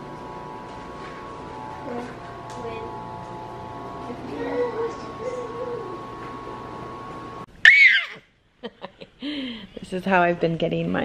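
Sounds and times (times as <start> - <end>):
faint steady hum: 0.0 - 11.0
toddler squealing: 7.6 - 8.2.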